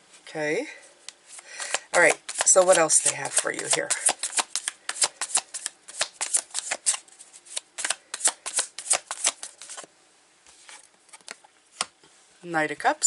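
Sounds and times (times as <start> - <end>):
cards being shuffled: 1.3 - 9.9.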